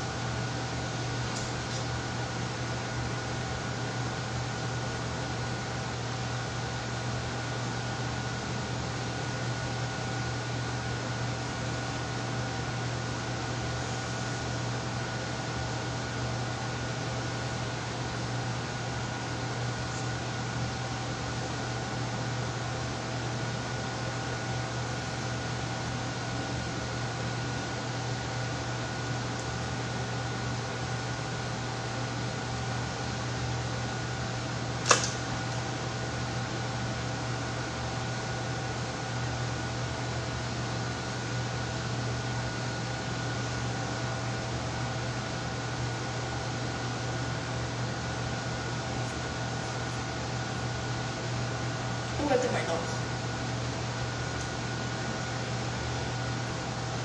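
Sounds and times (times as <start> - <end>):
ventilation fan humming: 0.0 - 57.0
sharp click: 34.8 - 35.2.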